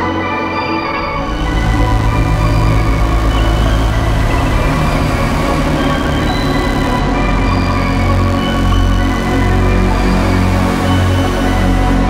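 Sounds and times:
slow cinematic music: 0.0s - 12.0s.

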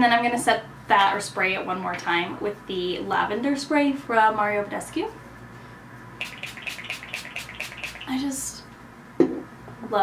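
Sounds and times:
spray bottle spritzes: 6.2s - 8.2s.

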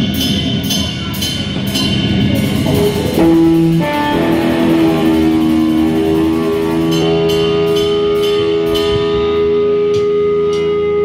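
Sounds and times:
held guitar notes ringing: 0.0s - 11.0s
live rock band: 2.4s - 11.0s.

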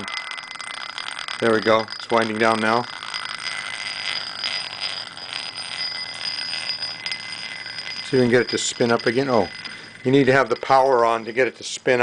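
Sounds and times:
metal ball rolling in glass bowl: 0.0s - 12.0s.

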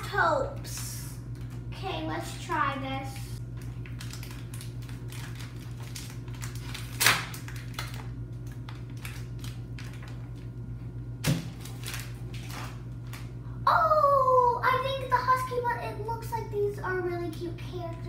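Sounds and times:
foil packet crinkling and tearing: 3.4s - 10.6s, 11.2s - 13.4s.

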